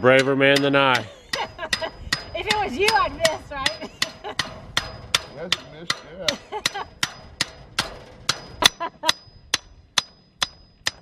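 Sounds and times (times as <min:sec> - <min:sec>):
hammer clanging on steel post: 0:00.0 - 0:11.0.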